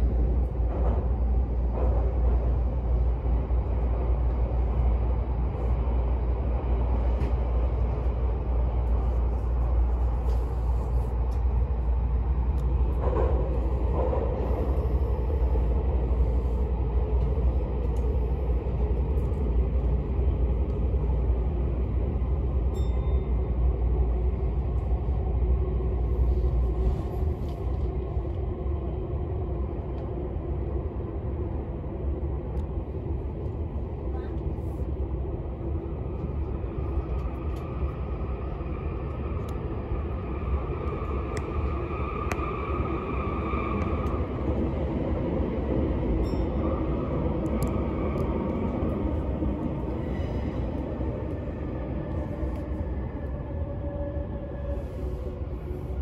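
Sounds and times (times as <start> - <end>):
train wheels rumbling on track: 0.0 - 56.0.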